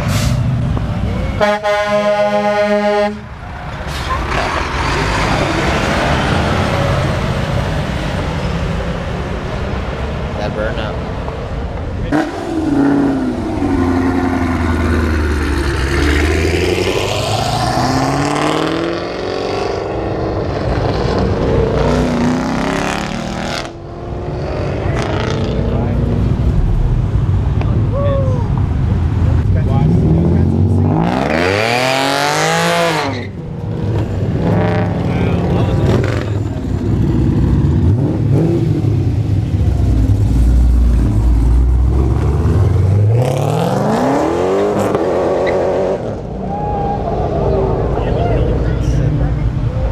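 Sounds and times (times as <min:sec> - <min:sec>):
cars accelerating past: 0:03.6 - 0:49.9
car engine revving hard: 0:12.1 - 0:26.8, 0:29.8 - 0:33.2, 0:40.1 - 0:46.3.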